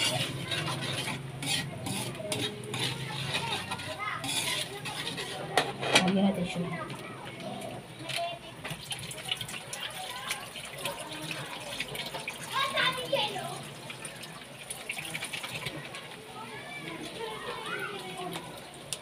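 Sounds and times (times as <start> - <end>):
sauce bubbling in a wok: 0.0 - 5.8, 7.2 - 19.0
children chattering: 0.0 - 19.0.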